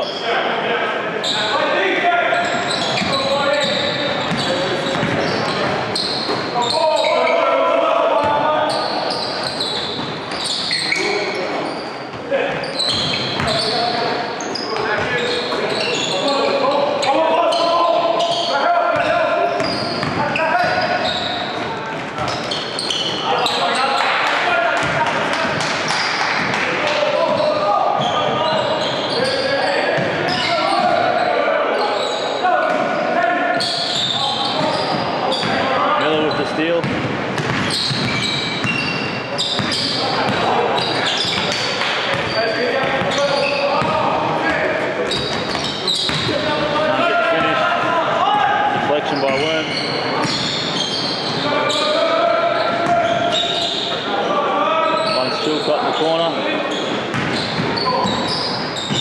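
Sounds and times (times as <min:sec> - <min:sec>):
people calling out: 0:02.2 - 0:11.8, 0:14.6 - 0:21.6
basketball bouncing on court: 0:02.9 - 0:06.5, 0:12.9 - 0:13.7, 0:18.9 - 0:20.9, 0:21.9 - 0:23.2, 0:24.8 - 0:29.0, 0:30.0 - 0:30.5, 0:36.8 - 0:44.2, 0:45.1 - 0:46.8, 0:57.1 - 0:59.0.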